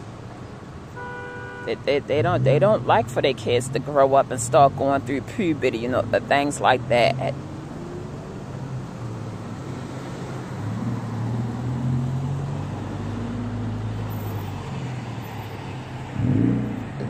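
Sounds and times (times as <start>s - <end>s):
car engines humming: 0.0s - 17.0s
tyre and road noise: 0.0s - 17.0s.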